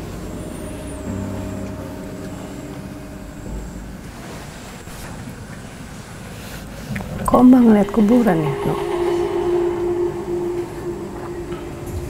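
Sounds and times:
faint steady tones: 0.0s - 12.0s.

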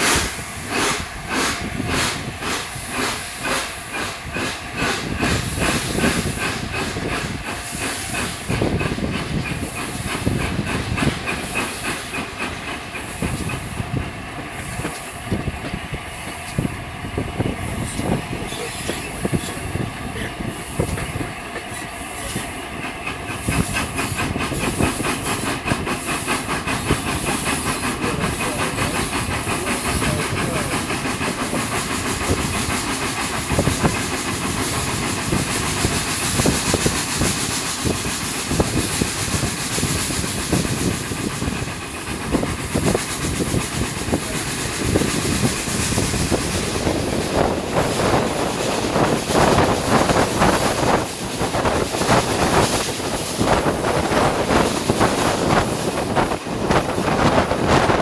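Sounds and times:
steam hissing: 0.0s - 58.0s
steam locomotive exhaust beats: 0.0s - 58.0s
train rattling on rails: 0.0s - 58.0s.

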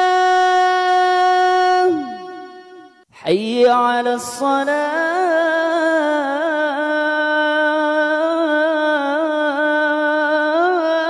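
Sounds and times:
man chanting call to prayer: 0.0s - 11.0s.

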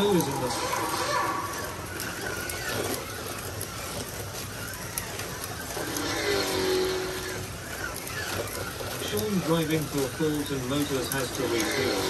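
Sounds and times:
slot cars whirring on track: 0.0s - 12.0s.

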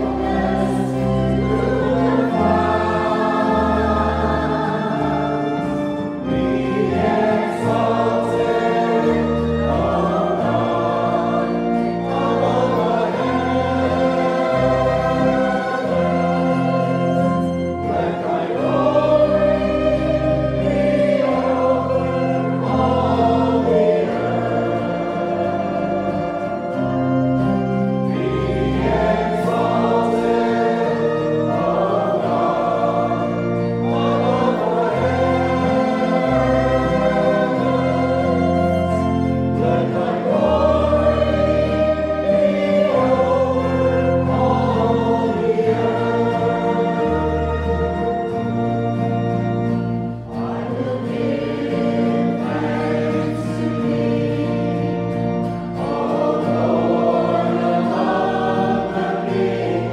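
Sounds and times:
choir and congregation singing hymn: 0.0s - 59.9s
organ holding bass notes: 0.0s - 59.9s.

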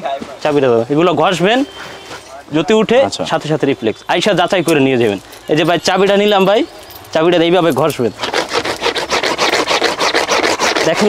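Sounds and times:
plastic scrubbing on fabric: 8.0s - 11.0s.

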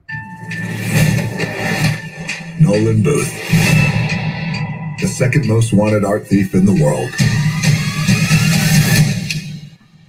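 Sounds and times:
trailer music: 0.0s - 10.0s.

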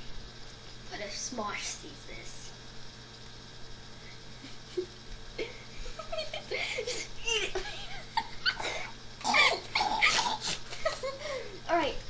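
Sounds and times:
boys laughing: 4.4s - 11.5s.

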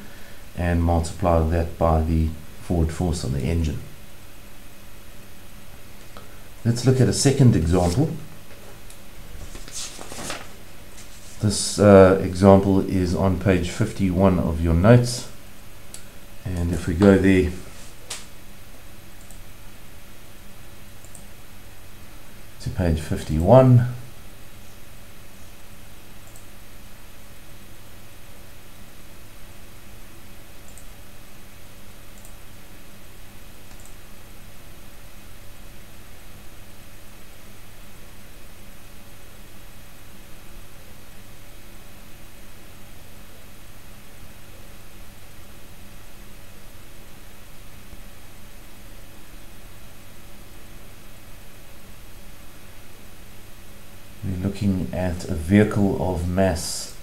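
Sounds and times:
low electrical hum: 0.0s - 57.0s
microphone hiss: 0.0s - 57.0s
faint mouse clicks: 21.0s - 21.3s, 33.7s - 34.0s.

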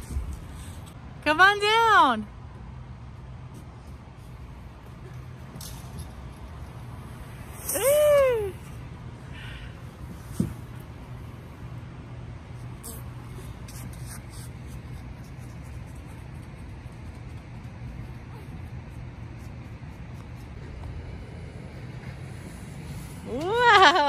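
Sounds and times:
low hum: 2.3s - 24.0s.

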